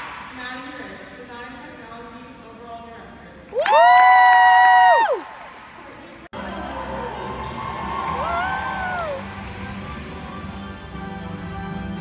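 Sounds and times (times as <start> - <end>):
crowd whooping: 3.6 - 5.3, 6.4 - 9.8
crowd noise: 5.0 - 12.0
music: 6.4 - 12.0.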